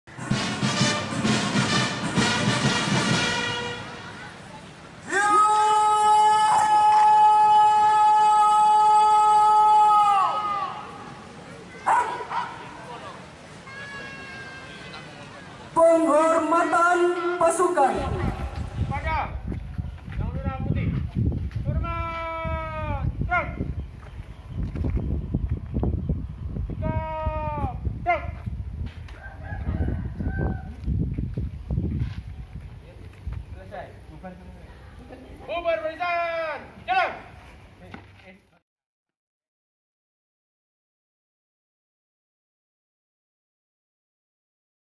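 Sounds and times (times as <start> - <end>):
person shouting: 5.0 - 11.1, 21.7 - 23.6, 26.8 - 28.4
wind buffeting microphone: 18.0 - 33.9.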